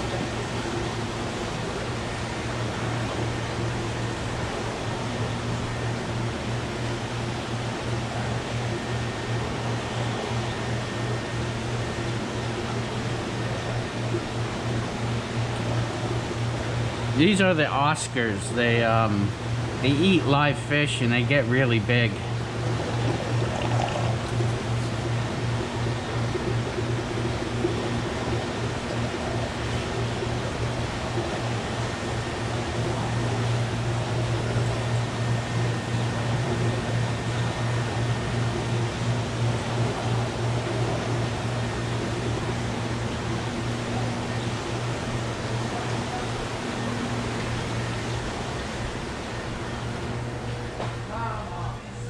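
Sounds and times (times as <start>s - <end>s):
aquarium pumps bubbling: 0.0s - 52.0s
low electrical hum: 0.0s - 52.0s.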